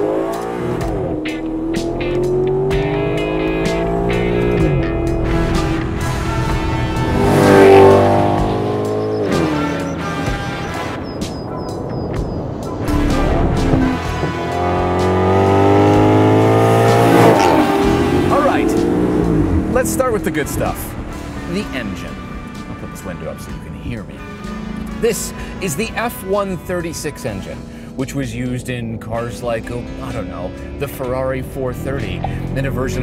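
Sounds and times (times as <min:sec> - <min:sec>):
car engine accelerating hard: 0:00.0 - 0:12.0, 0:12.6 - 0:33.0.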